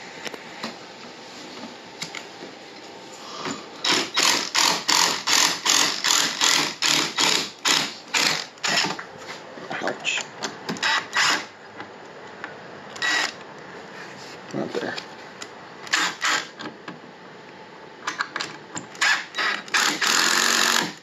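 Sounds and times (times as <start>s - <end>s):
impact driver bursts: 3.8s - 9.0s, 10.8s - 11.5s, 13.0s - 13.4s, 15.9s - 16.6s, 19.0s - 21.0s.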